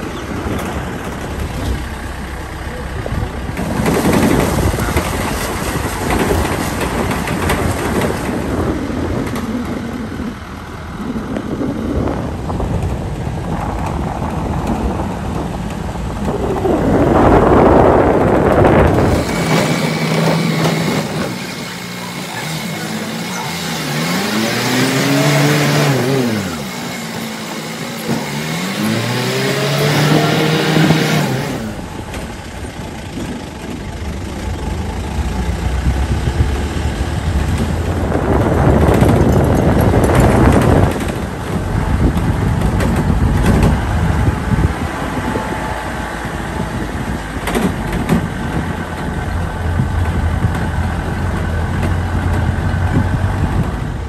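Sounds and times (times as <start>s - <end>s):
car engine revving: 0.0s - 54.0s
road noise: 0.0s - 54.0s.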